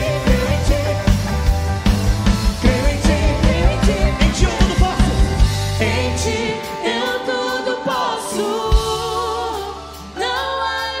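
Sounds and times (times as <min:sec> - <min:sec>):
people singing with worship band: 0:00.0 - 0:11.0.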